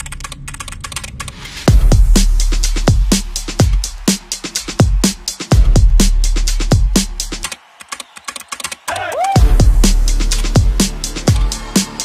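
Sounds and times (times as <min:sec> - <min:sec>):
keyboard typing clicks: 0:00.0 - 0:01.4
electronic music: 0:00.0 - 0:12.0.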